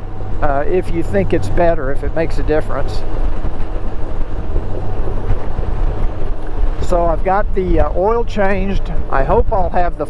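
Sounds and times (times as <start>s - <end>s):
motorcycle riding noise: 0.0s - 10.0s
wind buffeting microphone: 0.0s - 10.0s.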